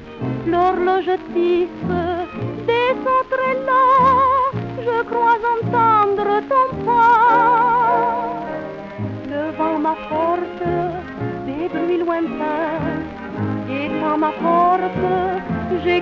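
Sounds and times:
woman singing with vibrato: 0.5s - 8.6s, 9.3s - 16.0s.

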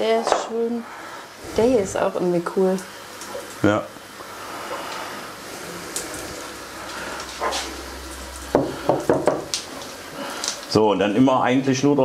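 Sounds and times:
rock knocking on glass: 8.5s - 9.5s.

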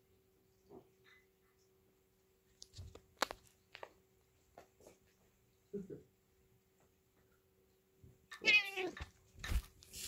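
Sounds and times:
cat fur brushing microphone: 9.4s - 10.0s.

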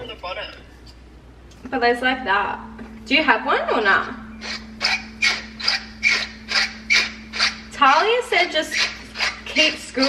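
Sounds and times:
grinder rasping clicks: 8.7s - 10.0s.

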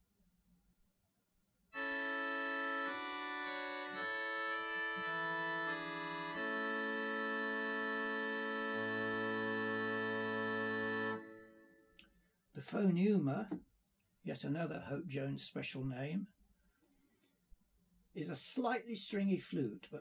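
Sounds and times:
pipe organ chords: 1.8s - 11.8s
low organ bass note: 2.0s - 11.5s.

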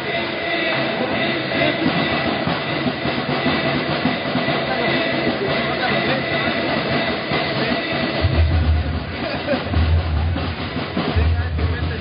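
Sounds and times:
crowd din in a hall: 0.0s - 12.0s.

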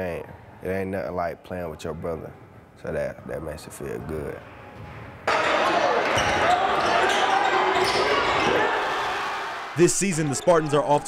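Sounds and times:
crowd and court noise: 1.8s - 11.0s.

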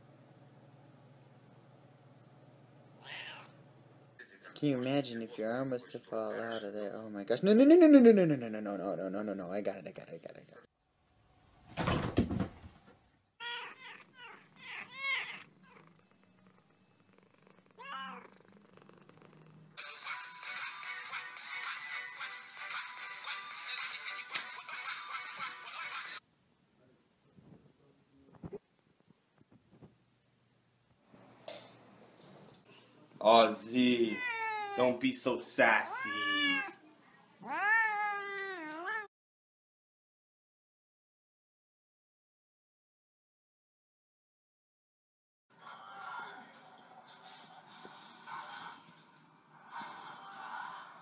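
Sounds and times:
cat meowing: 3.0s - 3.6s, 13.4s - 15.9s, 17.8s - 18.4s, 34.0s - 34.9s, 35.8s - 36.8s, 37.4s - 39.1s.

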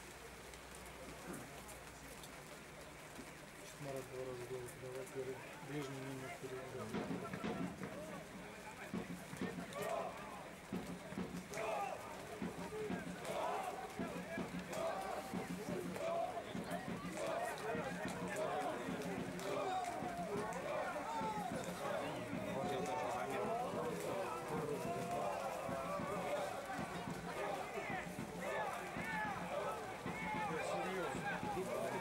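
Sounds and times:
outdoor background noise: 0.0s - 32.0s
voices calling and shouting: 3.4s - 32.0s.

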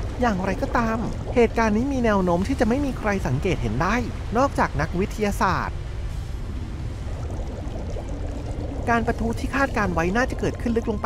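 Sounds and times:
rushing bubbling water: 0.0s - 11.0s
deep low rumble: 5.7s - 11.0s.

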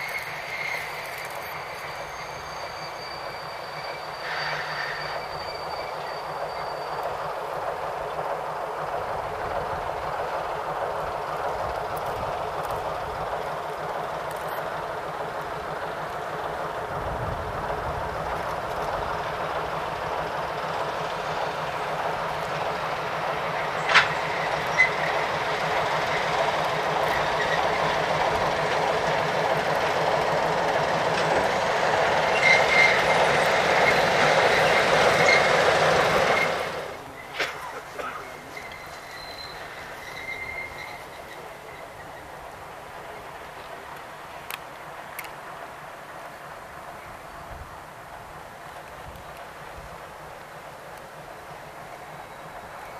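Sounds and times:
diesel locomotive engine under load: 0.0s - 52.9s
train wheels rolling on track: 0.0s - 52.9s.

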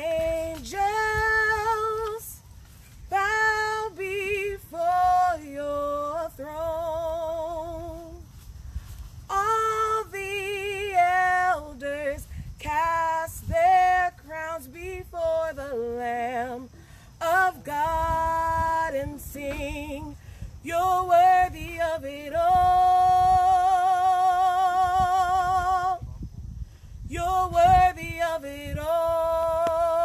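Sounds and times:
woman singing: 0.0s - 2.5s, 3.1s - 8.3s, 9.3s - 26.1s, 27.1s - 30.0s.

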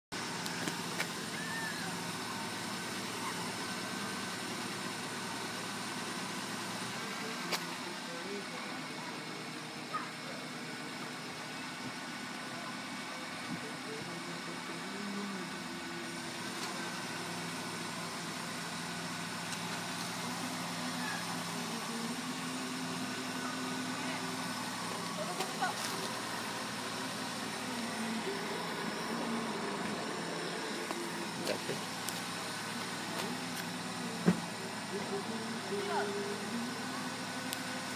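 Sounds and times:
car engine idling: 0.1s - 37.9s
faint muffled voices: 0.3s - 37.9s.

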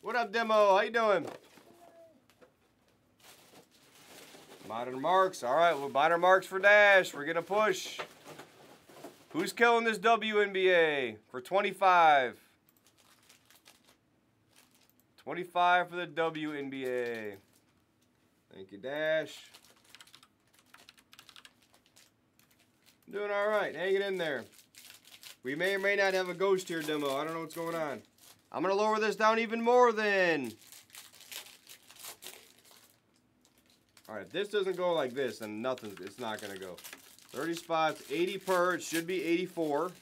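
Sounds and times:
faint handling clicks and crinkles: 12.6s - 15.2s, 16.4s - 18.3s, 19.2s - 28.6s, 30.4s - 40.0s.

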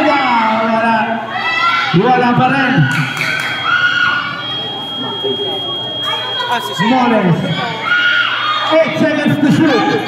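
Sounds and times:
spectators chattering and shouting: 0.0s - 10.0s
high-pitched tone: 3.0s - 7.8s.

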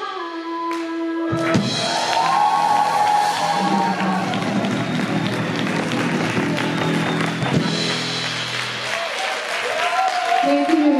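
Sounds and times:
live band playing: 1.0s - 10.9s
audience cheering and clapping: 1.4s - 10.9s.

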